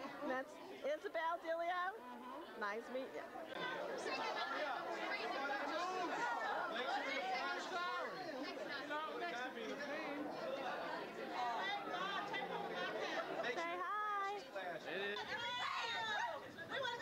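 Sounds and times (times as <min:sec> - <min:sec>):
adults chattering: 0:00.0 - 0:17.0.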